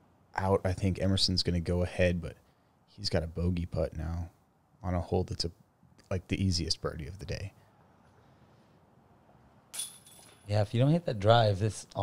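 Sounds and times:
disc hitting metal chains: 9.7s - 10.5s.

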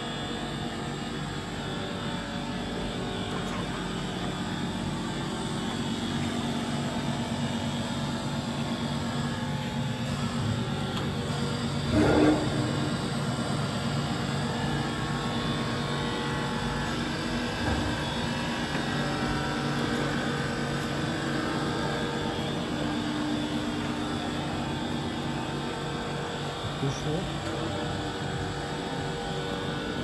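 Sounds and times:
grinder machine humming: 0.0s - 30.0s.

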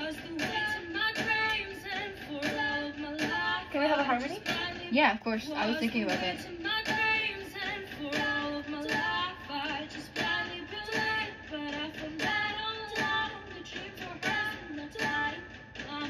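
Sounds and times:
instrumental backing with beat: 0.0s - 16.0s
woman singing: 0.0s - 16.0s.

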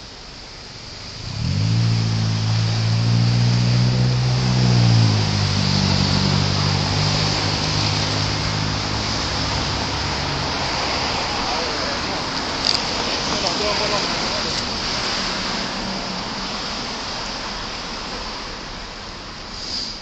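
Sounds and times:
car engine starting and humming: 0.0s - 18.1s
traffic and road noise: 0.0s - 20.0s.

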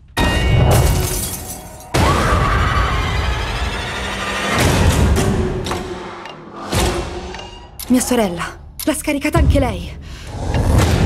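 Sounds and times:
glass shattering: 0.2s - 2.1s.

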